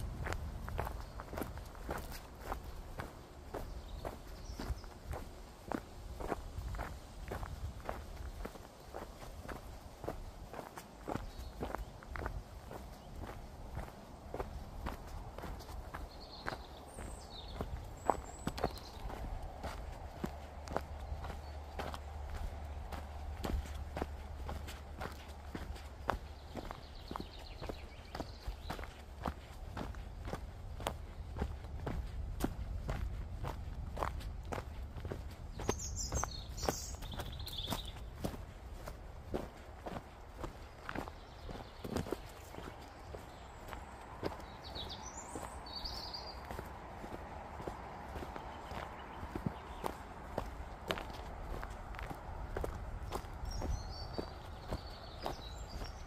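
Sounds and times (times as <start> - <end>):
footsteps on forest trail: 0.0 - 56.0.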